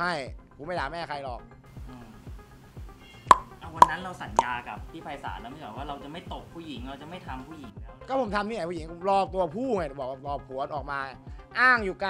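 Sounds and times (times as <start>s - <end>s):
background music with low beat: 1.8s - 8.4s
sharp pop sound effects: 3.2s - 4.6s.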